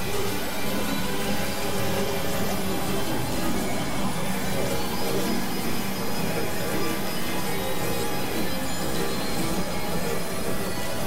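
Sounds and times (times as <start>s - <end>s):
synthesizer drone with hiss: 0.0s - 11.0s.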